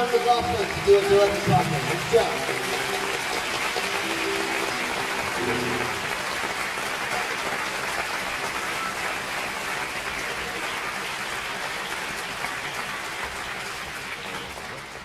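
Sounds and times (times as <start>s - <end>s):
audience applauding: 0.0s - 15.0s.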